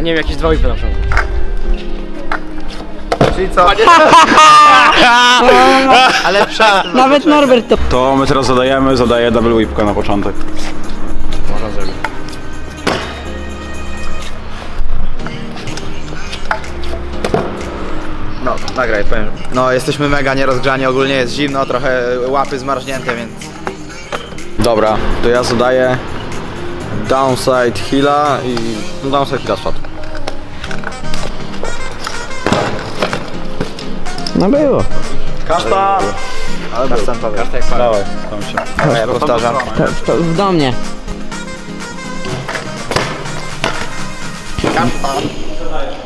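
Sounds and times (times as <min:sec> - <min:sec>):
background music: 0:00.0 - 0:46.0.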